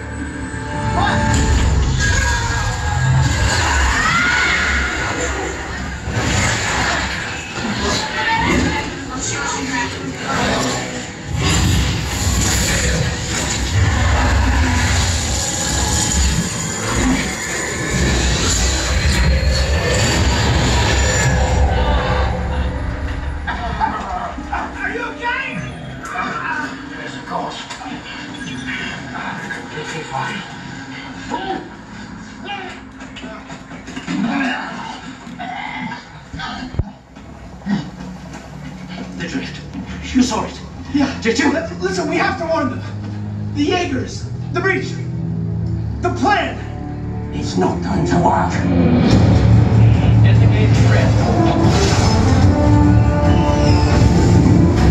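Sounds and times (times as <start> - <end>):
film sound effects and score: 0.0 - 54.9
deep bass rumble: 42.6 - 54.9.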